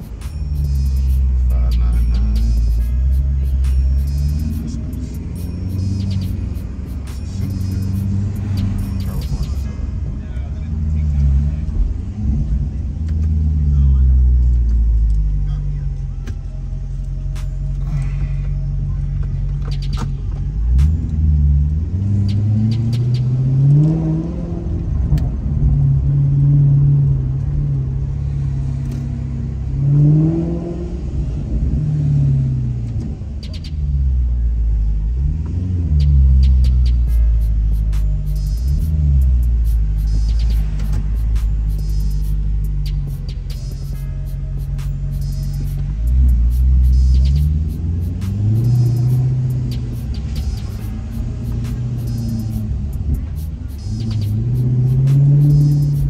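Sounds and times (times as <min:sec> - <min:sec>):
car engine heard from cabin: 0:00.0 - 0:56.0.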